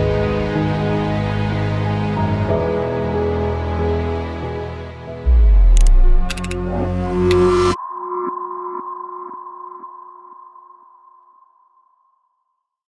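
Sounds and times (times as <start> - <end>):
deep musical hit: 5.3 - 7.7.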